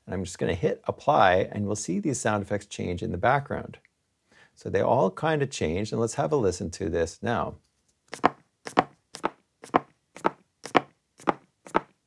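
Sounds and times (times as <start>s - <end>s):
footsteps on wooden stairs: 8.2s - 12.0s.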